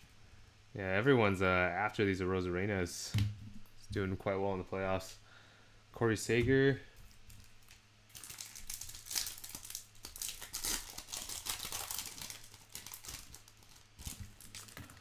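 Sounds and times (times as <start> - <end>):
foil wrapper tearing and crinkling: 7.2 - 15.0.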